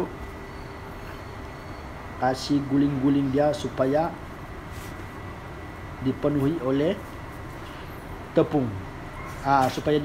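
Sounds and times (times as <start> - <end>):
low background hum and rumble: 0.0 - 10.0.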